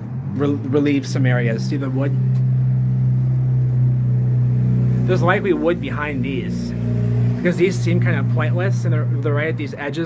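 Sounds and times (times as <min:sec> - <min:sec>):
engine running with low hum: 0:00.0 - 0:10.0.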